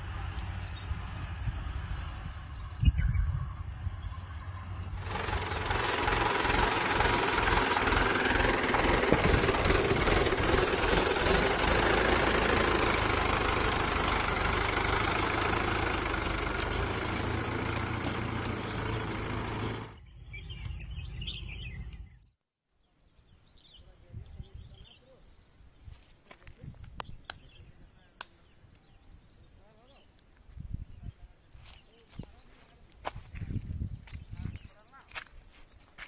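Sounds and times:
diesel tractor engine running: 0:00.0 - 0:22.2.

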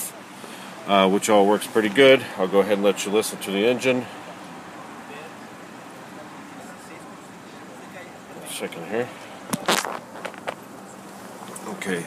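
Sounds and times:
car engine idling quietly: 0:00.0 - 0:12.0.

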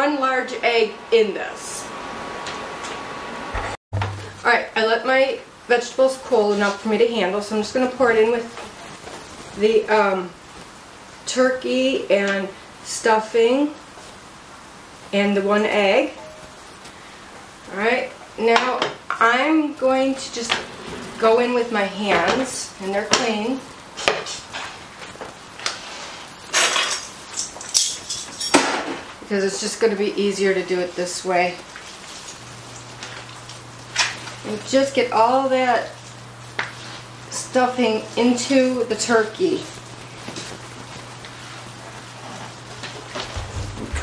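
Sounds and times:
wooden spoon knocking skillet: 0:42.8 - 0:44.0.

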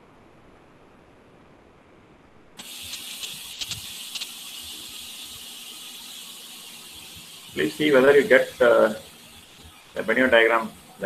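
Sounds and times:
microphone line hiss: 0:00.0 - 0:11.0.

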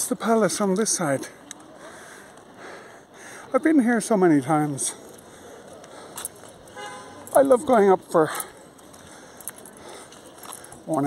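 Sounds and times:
faint city street background: 0:00.0 - 0:11.0
car horn toot: 0:06.7 - 0:07.3.

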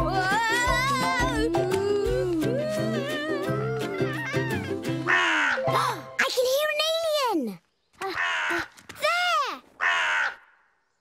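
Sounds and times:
crow cawing: 0:05.0 - 0:05.6, 0:08.0 - 0:08.8, 0:09.8 - 0:10.8.

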